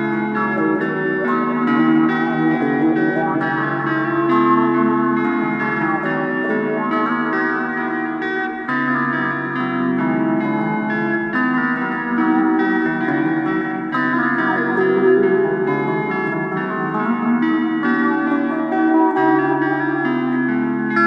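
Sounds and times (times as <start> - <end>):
blues-rock guitar music: 0.0 - 21.0.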